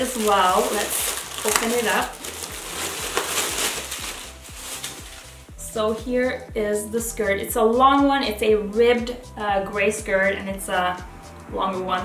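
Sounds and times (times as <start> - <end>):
plastic package rustling: 0.0 - 5.5
soft background music: 0.0 - 12.0.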